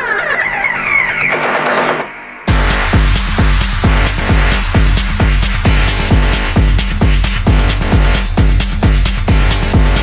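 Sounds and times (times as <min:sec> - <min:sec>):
techno synth sweep climbing: 0:00.0 - 0:10.0.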